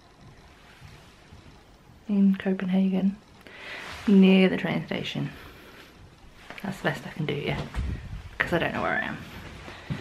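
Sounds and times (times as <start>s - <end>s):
soft low bumps: 0.0s - 3.4s, 4.0s - 10.0s
faint room noise: 0.0s - 10.0s.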